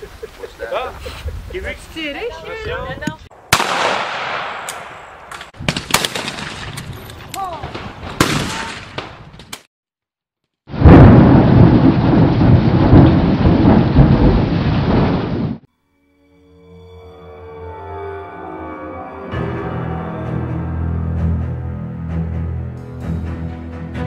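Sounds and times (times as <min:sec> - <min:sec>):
rain rushing: 0:00.0 - 0:02.2, 0:10.7 - 0:15.7
thunder cracks: 0:03.5 - 0:07.0, 0:10.7 - 0:15.7
thunder rumbling: 0:10.7 - 0:15.7.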